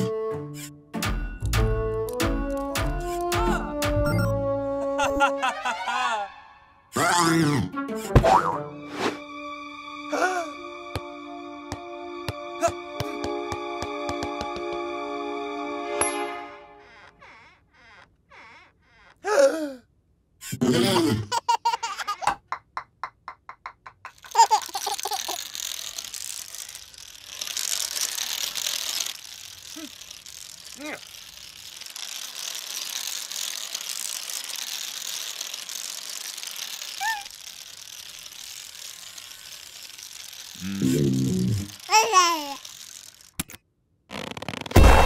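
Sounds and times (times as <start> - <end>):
baby giggling and squealing: 20.4 - 22.6, 24.0 - 25.5, 41.9 - 42.6
dominoes clicking and clattering: 24.0 - 44.7.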